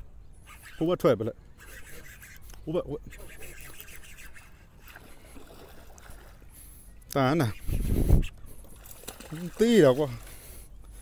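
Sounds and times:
faint rubbing and water: 1.6s - 11.0s.

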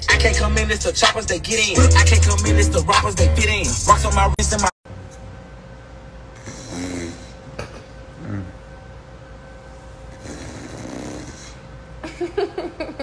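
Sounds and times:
faint steady hum: 4.9s - 13.0s
soft vocal sounds: 8.2s - 8.6s.

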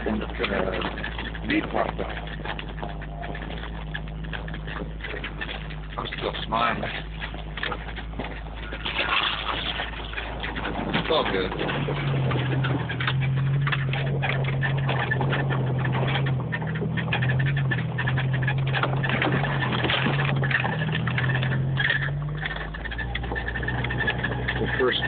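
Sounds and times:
car engine droning: 0.0s - 25.0s
clicks and rattles over bumps: 0.0s - 25.0s.

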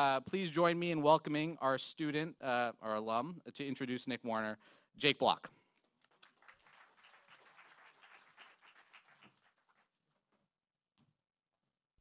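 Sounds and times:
faint audience applause: 6.1s - 10.0s.

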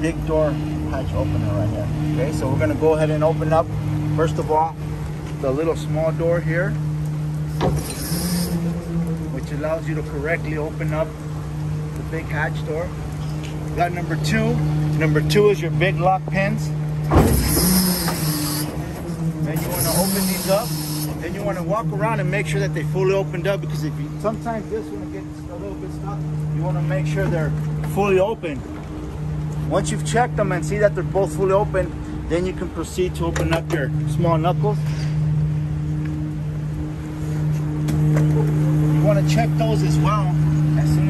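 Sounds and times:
hydraulic hiss: 7.5s - 8.6s, 17.1s - 18.8s, 19.6s - 21.2s.

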